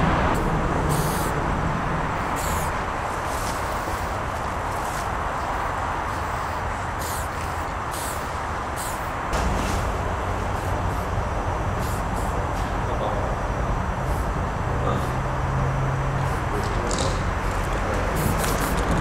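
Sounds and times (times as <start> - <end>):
heavy vehicle passing: 0.0 - 19.0
traffic rumble: 0.0 - 19.0
spray-paint can hissing: 0.4 - 1.4, 2.2 - 4.1, 6.1 - 9.2, 10.6 - 11.1, 11.8 - 12.4, 14.0 - 14.3, 16.2 - 19.0.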